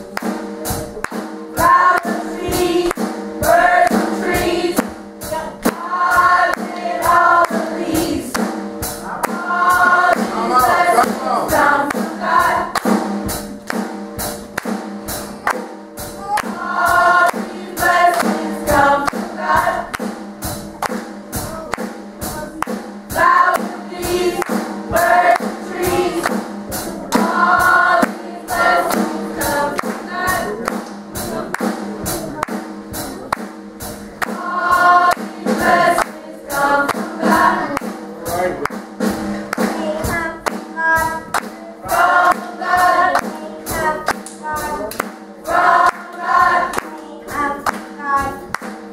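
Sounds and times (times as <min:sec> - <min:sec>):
percussive beat: 0:00.0 - 0:48.9
choir singing gospel song: 0:01.5 - 0:13.9, 0:15.1 - 0:21.1, 0:21.7 - 0:48.9.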